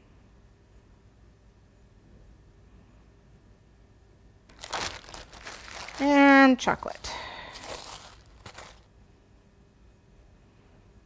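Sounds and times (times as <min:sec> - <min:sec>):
plastic wrapping crinkling: 0:04.5 - 0:08.9.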